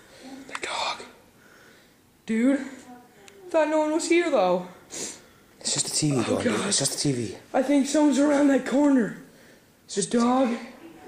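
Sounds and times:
person whispering: 0:00.2 - 0:01.2.

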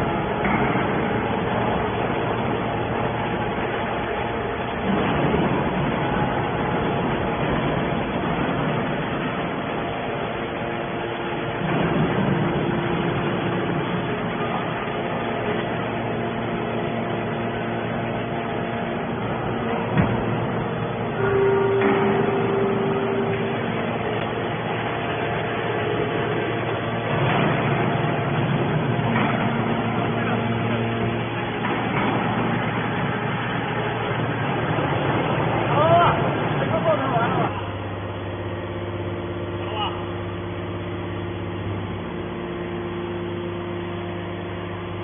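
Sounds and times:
hydraulic machine humming: 0:00.0 - 0:45.0
steady tone: 0:15.8 - 0:34.1.

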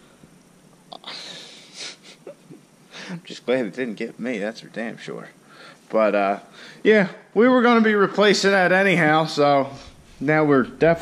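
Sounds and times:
sharp hiss of breath: 0:02.9 - 0:03.2, 0:05.5 - 0:05.8, 0:06.5 - 0:06.8.

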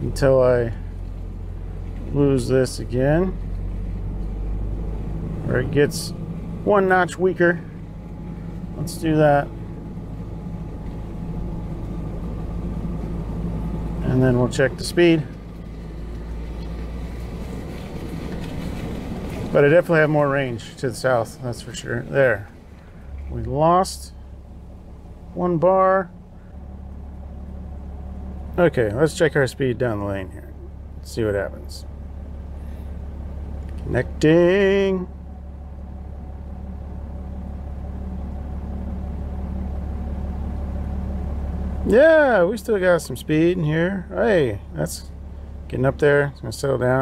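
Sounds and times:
truck engine and road rumble: 0:00.0 - 0:47.0.

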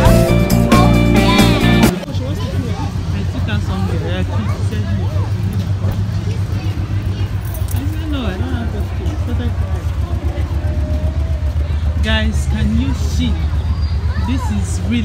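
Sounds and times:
car rumbling in traffic: 0:00.0 - 0:15.0
indistinct voices talking: 0:00.0 - 0:15.0.

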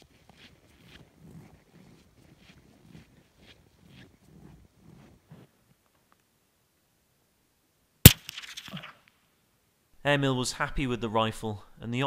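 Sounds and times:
rifle shot: 0:08.1 - 0:09.1.

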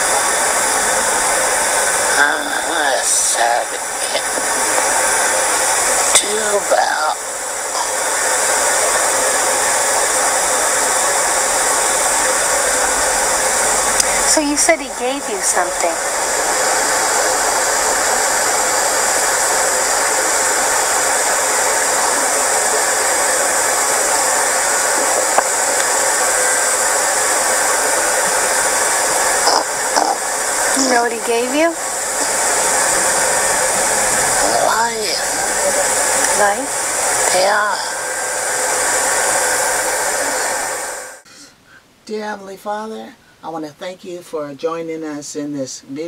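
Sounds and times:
loud rushing hiss: 0:00.0 - 0:41.4
faint voice: 0:32.2 - 0:36.7.

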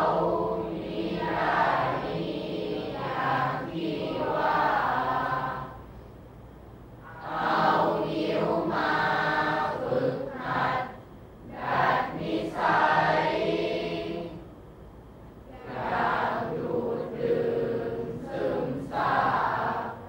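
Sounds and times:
group chanting verse: 0:00.0 - 0:06.0, 0:07.0 - 0:14.5, 0:15.5 - 0:20.0.

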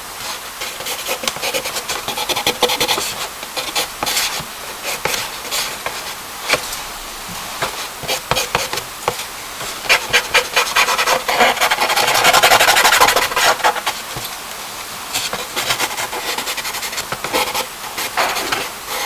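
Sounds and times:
charcoal rubbing on paper: 0:00.6 - 0:06.6, 0:09.8 - 0:14.1, 0:15.2 - 0:19.0.

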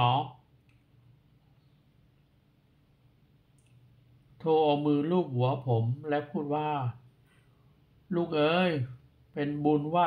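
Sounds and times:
man narrating: 0:00.0 - 0:00.4, 0:04.4 - 0:07.0, 0:08.1 - 0:10.0
low steady hum: 0:00.0 - 0:10.0.

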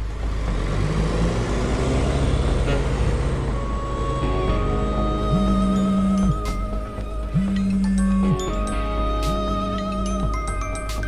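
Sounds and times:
jeep engine and road noise: 0:00.0 - 0:11.0
music: 0:00.0 - 0:11.0.

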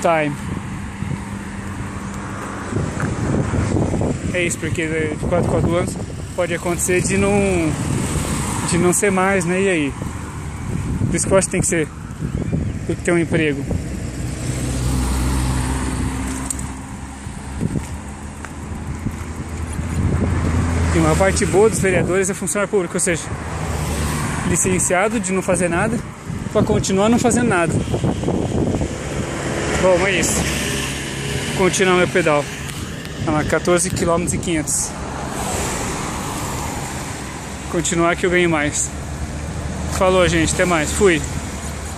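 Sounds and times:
passing car engines hum: 0:00.0 - 0:41.9
tyres hissing on asphalt: 0:34.8 - 0:41.9.

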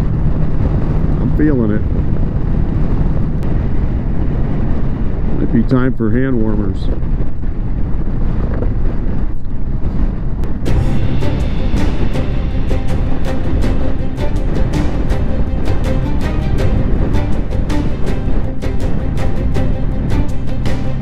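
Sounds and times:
wind rushing over microphone: 0:00.0 - 0:21.0
music with steady beat: 0:10.4 - 0:21.0.

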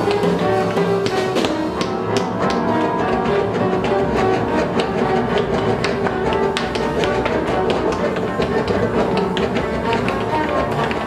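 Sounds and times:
bowed cello: 0:00.0 - 0:11.0
piano: 0:00.0 - 0:11.0
sharp percussive taps: 0:00.0 - 0:11.0.

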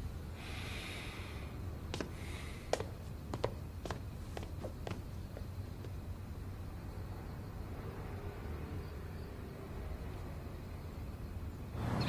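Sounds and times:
low room hum: 0:00.0 - 0:12.0
person breathing out through nose: 0:00.4 - 0:02.7.

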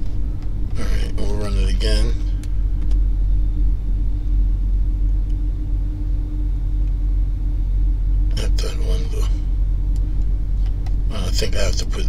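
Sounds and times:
constant hum: 0:00.0 - 0:12.0
low rumble: 0:00.0 - 0:12.0.

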